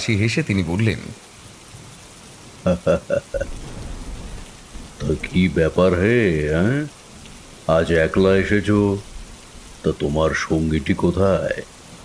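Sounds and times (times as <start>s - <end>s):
steady rain falling: 0.0s - 12.0s
man chuckling: 2.7s - 3.6s
faint low rumble: 2.9s - 11.8s.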